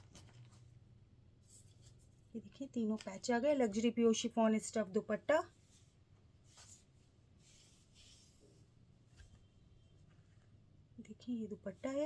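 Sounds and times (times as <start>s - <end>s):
low steady hum: 0.0s - 12.0s
fabric rustling: 5.4s - 10.7s.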